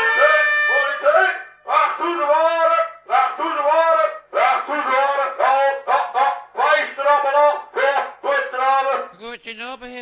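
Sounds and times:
wind instrument playing swooping notes: 0.0s - 1.0s.

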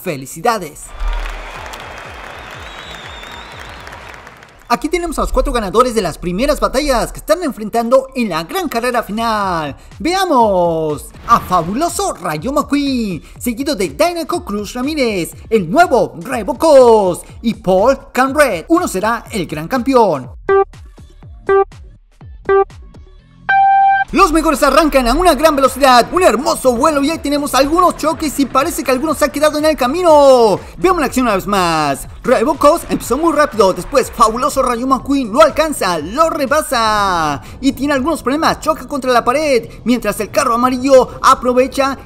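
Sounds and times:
music: 0.8s - 42.0s
crowd applause: 0.9s - 4.7s
electronic countdown beeps: 20.4s - 20.8s, 21.5s - 21.8s, 22.5s - 22.8s, 23.5s - 24.1s
held high go tone: 23.5s - 24.2s.

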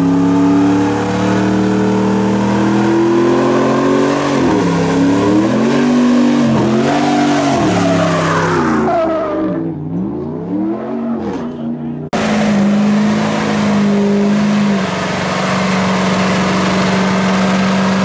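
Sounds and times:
truck engine revving: 0.0s - 18.0s.

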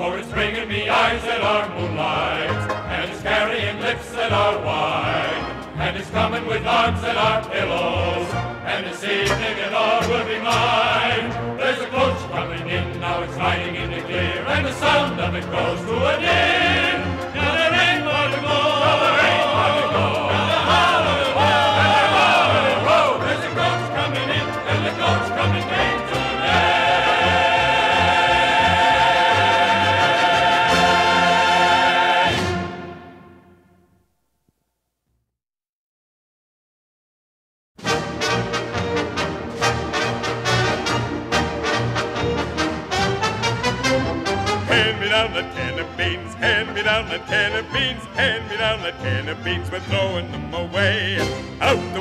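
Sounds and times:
brass chords: 0.0s - 12.7s, 13.8s - 34.0s, 37.8s - 52.0s
show tune singing with orchestra: 0.0s - 33.6s, 37.8s - 52.0s.

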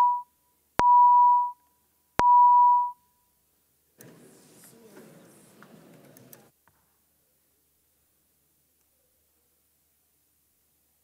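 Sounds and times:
electronic beeps: 0.0s - 1.6s, 2.2s - 3.0s.

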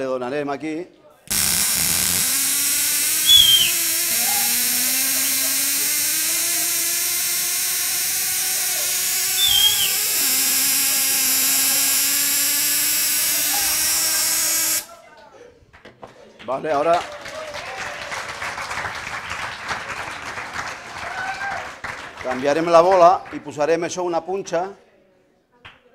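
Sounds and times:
tesla coil buzzing crackle: 1.3s - 14.9s.

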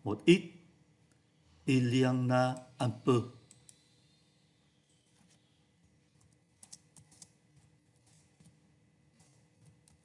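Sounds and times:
person speaking: 1.6s - 3.4s
faint keyboard keystrokes: 6.2s - 8.6s.

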